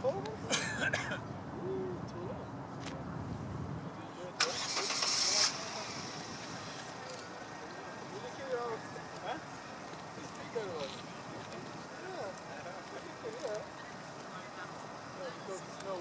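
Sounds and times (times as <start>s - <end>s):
vehicle engine rumbling: 1.2s - 16.0s
faint voices: 3.8s - 16.0s
sharp hiss: 4.4s - 7.0s.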